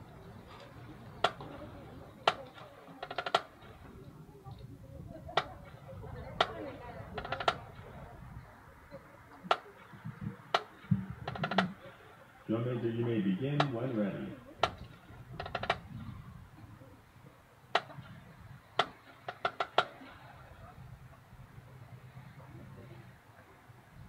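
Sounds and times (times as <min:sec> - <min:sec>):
murmur of voices: 0:00.0 - 0:24.0
sharp clicks: 0:14.6 - 0:15.8, 0:17.8 - 0:18.0.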